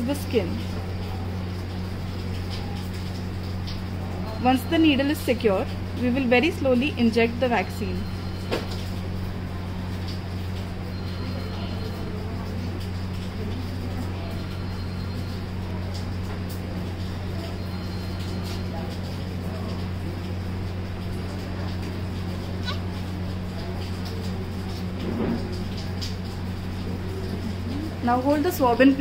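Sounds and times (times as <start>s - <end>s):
baby crying faintly: 22.6s - 23.0s.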